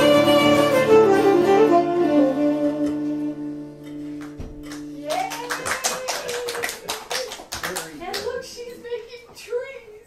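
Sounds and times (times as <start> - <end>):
hands clapping: 3.9 - 8.6.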